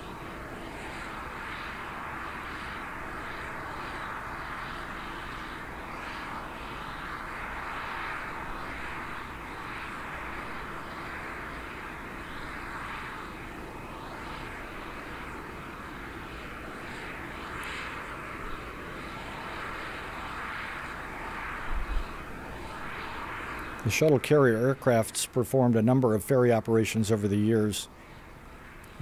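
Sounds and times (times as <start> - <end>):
jet turbine rushing noise: 0.0 - 29.0.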